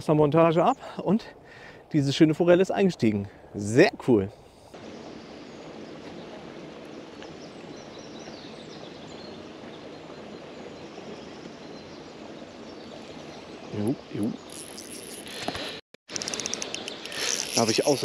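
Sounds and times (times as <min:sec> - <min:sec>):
outdoor background noise: 0:00.0 - 0:18.0.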